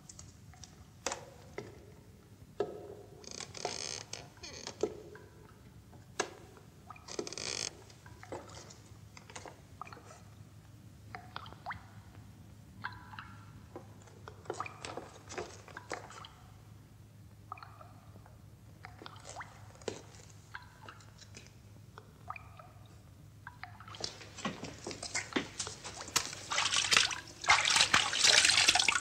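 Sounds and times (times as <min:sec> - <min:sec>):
short squeaky wood creaks: 0:07.1 - 0:07.8
footsteps on wood: 0:24.0 - 0:27.1.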